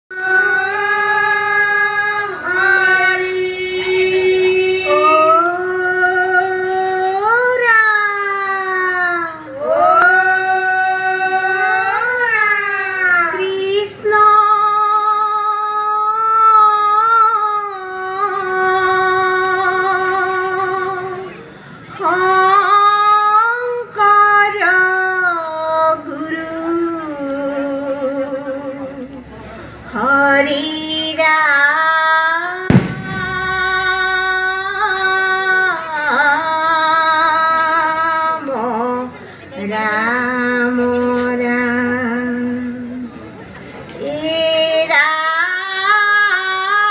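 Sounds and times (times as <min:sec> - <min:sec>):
women singing a devotional chant: 0:00.1 - 0:29.2, 0:29.9 - 0:43.1, 0:44.0 - 0:46.9
sharp thump: 0:32.7 - 0:34.0.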